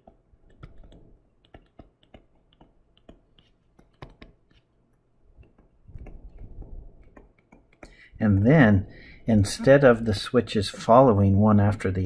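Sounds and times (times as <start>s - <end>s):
stylus tapping on tablet screen: 0.0s - 8.5s.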